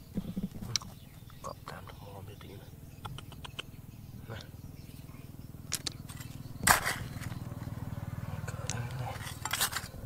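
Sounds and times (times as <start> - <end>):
small stones clicking and shifting: 5.7 - 7.4.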